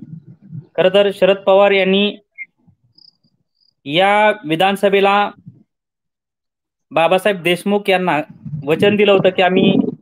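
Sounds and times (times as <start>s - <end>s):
man talking: 0.7s - 2.3s, 3.9s - 5.5s, 6.9s - 9.9s.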